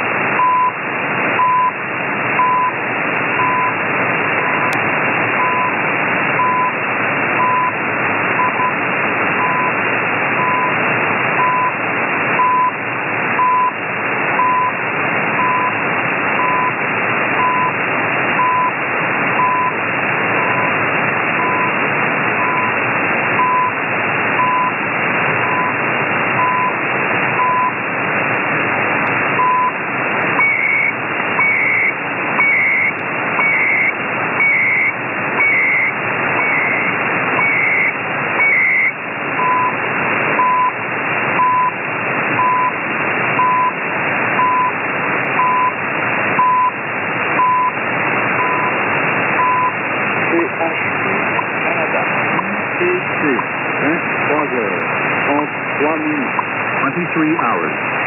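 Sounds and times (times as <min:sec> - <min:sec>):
radio static: 0:00.0 - 0:58.0
short time signal beeps: 0:19.4 - 0:19.8, 0:22.4 - 0:22.7, 0:23.4 - 0:23.8, 0:29.4 - 0:29.8, 0:30.4 - 0:39.8, 0:46.4 - 0:46.8
warbling data bursts: 0:29.3 - 0:40.8.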